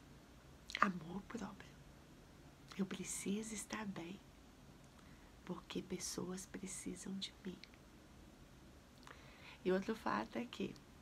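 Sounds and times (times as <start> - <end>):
woman speaking softly: 0.7 - 1.8, 2.7 - 4.3, 5.4 - 7.8, 9.6 - 10.8.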